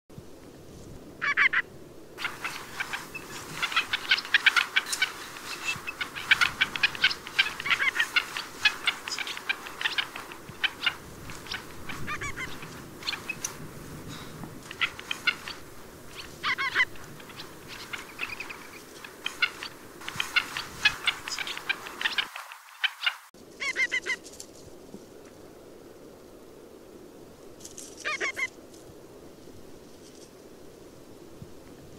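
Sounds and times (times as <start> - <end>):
bird short calls: 16.2 - 24.2, 28.0 - 28.5.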